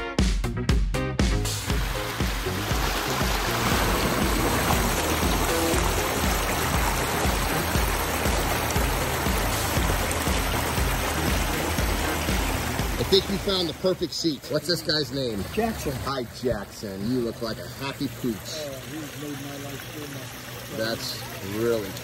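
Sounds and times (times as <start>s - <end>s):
music bass beat: 0.0s - 13.7s
waterfall rushing into pond: 1.4s - 22.0s.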